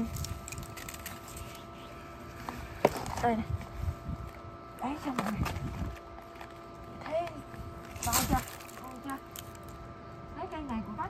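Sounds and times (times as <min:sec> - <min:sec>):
rustle of leafy greens being cut: 0:07.8 - 0:09.7.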